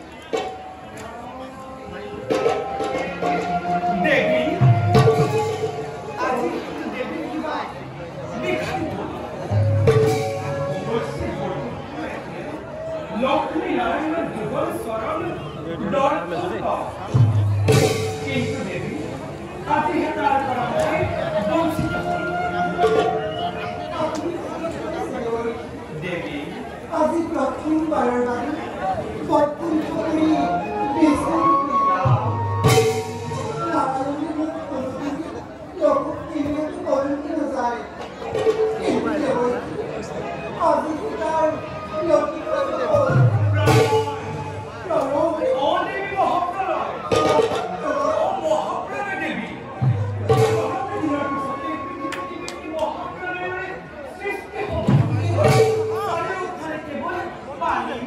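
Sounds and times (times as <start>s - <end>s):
musical accompaniment: 0.0s - 7.4s, 8.0s - 12.0s, 16.9s - 26.0s, 29.6s - 35.1s, 38.1s - 45.9s, 49.7s - 53.2s, 54.7s - 56.6s
person speaking stage dialogue: 0.0s - 58.0s.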